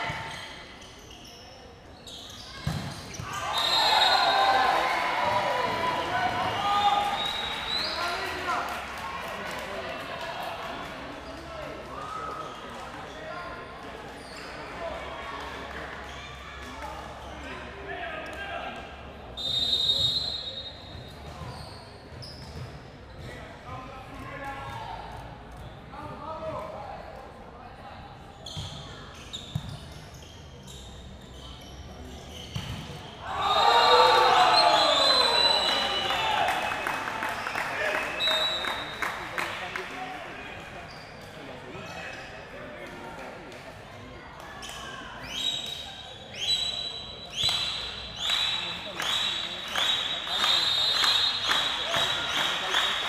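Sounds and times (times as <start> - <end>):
referee's whistle: 3.2 - 4.6, 6.4 - 8.2, 19.4 - 20.9, 33.0 - 37.1, 37.9 - 39.0, 45.2 - 53.0
crowd cheering and shouting: 3.3 - 7.3, 33.2 - 36.8.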